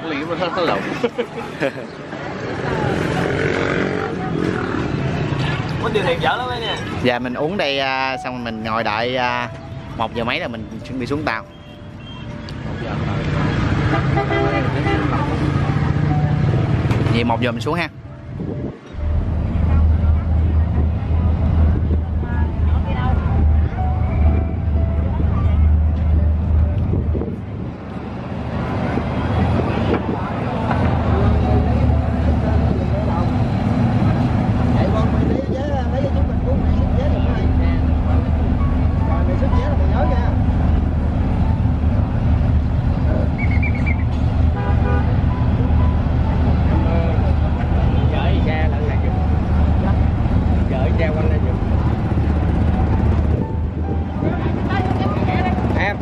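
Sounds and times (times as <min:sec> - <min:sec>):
ferry engines rumbling: 0:00.0 - 0:56.0
people talking: 0:19.5 - 0:26.2, 0:28.8 - 0:40.8, 0:46.6 - 0:56.0.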